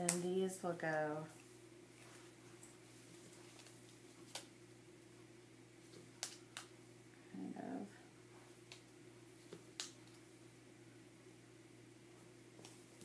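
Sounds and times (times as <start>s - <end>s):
steady electrical hum: 0.0s - 13.0s.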